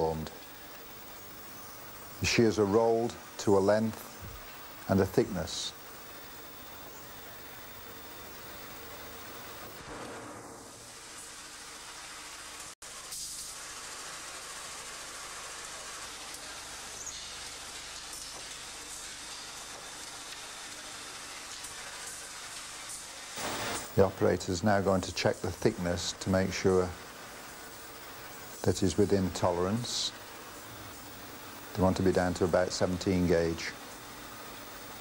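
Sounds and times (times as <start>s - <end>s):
gas furnace hissing: 0.0s - 35.0s.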